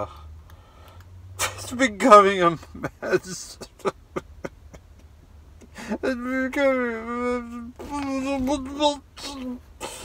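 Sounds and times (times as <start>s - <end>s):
man speaking: 1.4s - 3.8s, 5.9s - 9.6s
man laughing: 2.4s - 6.4s.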